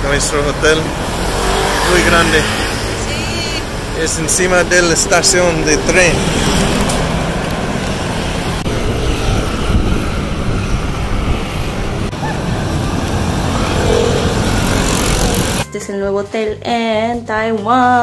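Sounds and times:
scooters and cars passing: 0.0s - 15.6s
box truck driving past: 1.0s - 15.6s.

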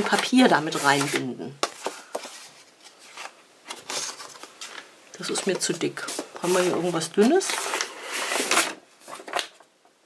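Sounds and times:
paper rustling: 0.0s - 9.7s.

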